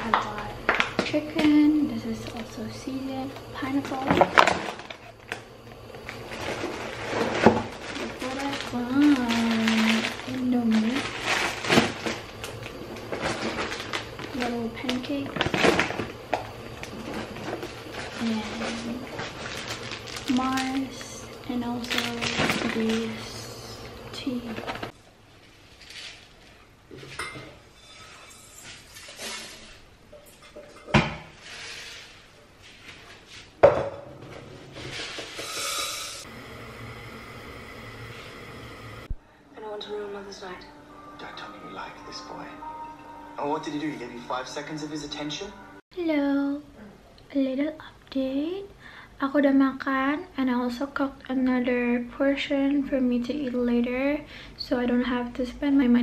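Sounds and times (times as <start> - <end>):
steady low hum: 0.0 - 25.4, 34.1 - 45.8
plastic packaging rustling: 3.6 - 24.9.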